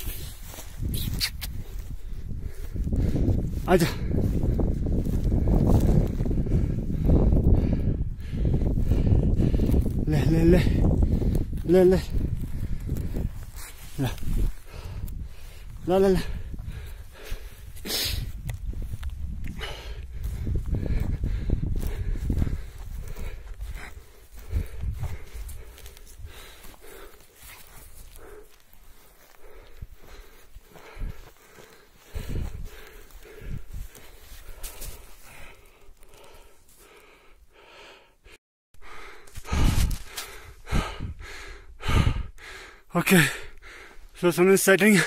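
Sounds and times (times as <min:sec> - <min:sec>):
microphone handling rumble: 0:00.0 - 0:26.5
footsteps on dry grass: 0:00.0 - 0:37.8, 0:38.8 - 0:41.5
heavy breathing: 0:01.5 - 0:44.2.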